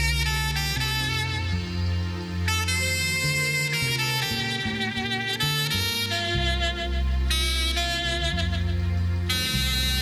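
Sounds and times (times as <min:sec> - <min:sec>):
electric bass: 0:00.0 - 0:10.0
keyboard: 0:00.0 - 0:10.0
saxophone melody: 0:00.0 - 0:10.0.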